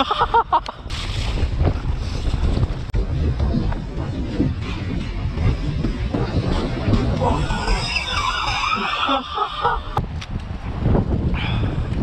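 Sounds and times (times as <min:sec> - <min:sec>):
low rumble of mountain bike: 0:00.0 - 0:12.0
wind buffeting microphone: 0:00.0 - 0:12.0.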